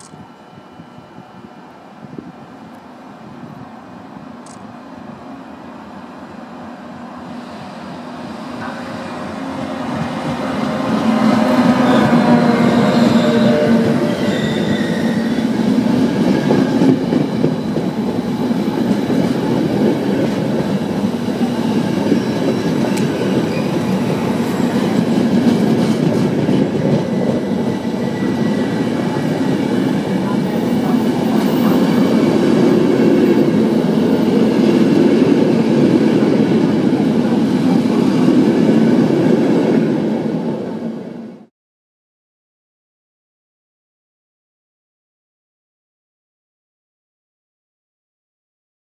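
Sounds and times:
locomotive whine: 0.0s - 41.5s
train wheels rumbling on rails: 6.7s - 41.2s.

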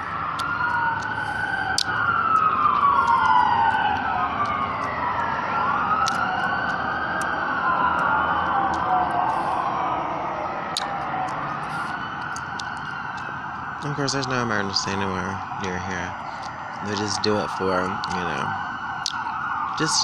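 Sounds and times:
ambulance siren wailing: 0.0s - 20.0s.

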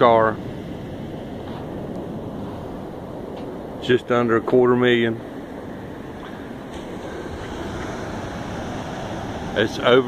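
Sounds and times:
ocean surf breaking: 0.0s - 10.0s
wind on microphone: 0.0s - 10.0s.

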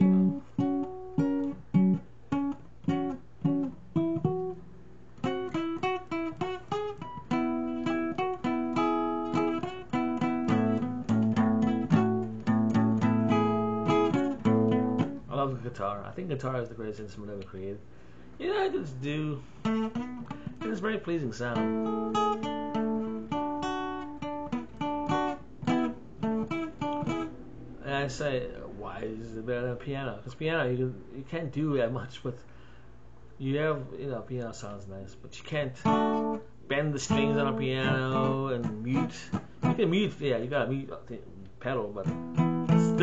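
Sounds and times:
acoustic guitar playing: 0.0s - 16.1s, 17.9s - 30.1s, 35.6s - 40.9s, 41.7s - 43.0s.

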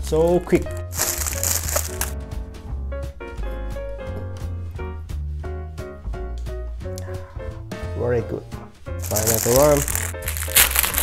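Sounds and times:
background music with beat: 0.6s - 7.9s
plastic packaging crinkling: 0.7s - 2.2s, 9.0s - 11.0s.

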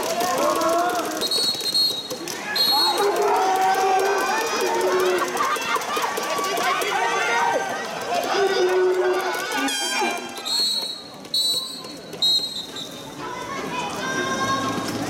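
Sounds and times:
crowd shouting and cheering: 0.0s - 15.0s
referee's whistle: 1.2s - 3.0s, 9.8s - 13.1s
chant-like calls: 6.6s - 10.3s.

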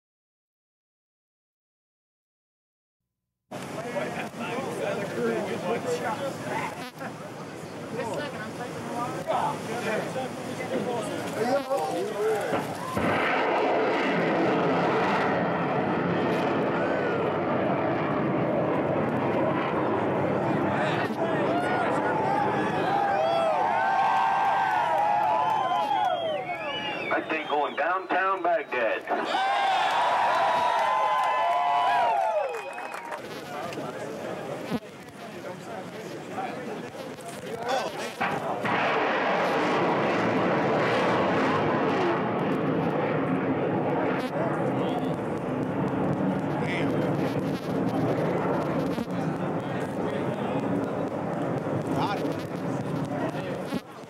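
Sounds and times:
rocket booster roaring: 12.5s - 26.0s, 38.0s - 53.8s.

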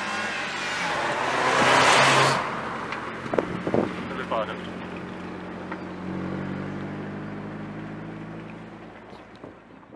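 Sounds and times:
car engine running: 2.6s - 9.9s.

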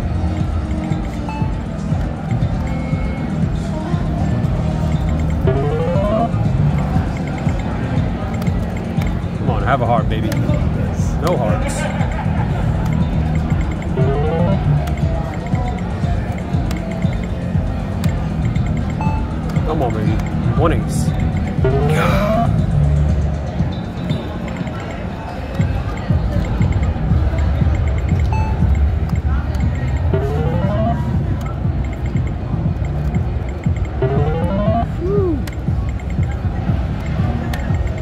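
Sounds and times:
low casino din: 0.0s - 38.0s
rising electronic tones: 5.4s - 6.4s, 13.4s - 15.0s, 21.5s - 22.6s, 30.1s - 31.2s, 33.9s - 35.5s.

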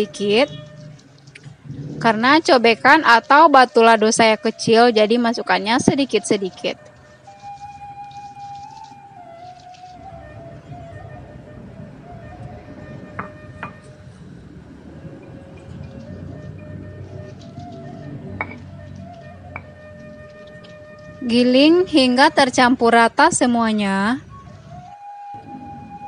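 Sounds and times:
soft background music: 0.0s - 26.0s.

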